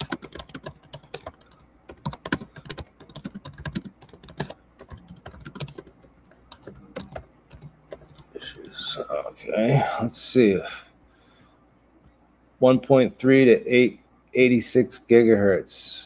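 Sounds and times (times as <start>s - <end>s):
computer keyboard typing: 0.0s - 8.9s.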